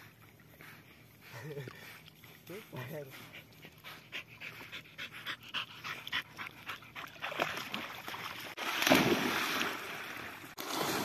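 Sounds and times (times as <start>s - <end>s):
dog splashing into water: 7.0s - 11.0s.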